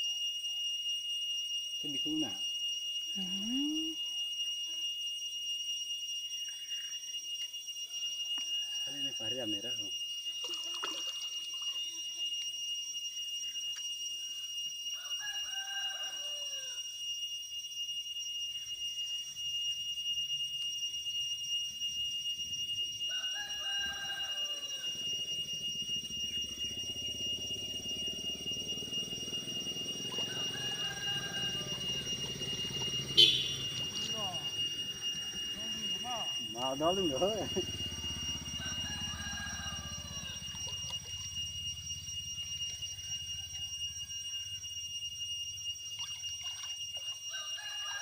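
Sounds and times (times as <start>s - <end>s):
steady high-pitched tones: 1.3s - 48.0s
rooster crowing: 14.9s - 16.9s, 23.0s - 44.7s, 47.3s - 48.0s.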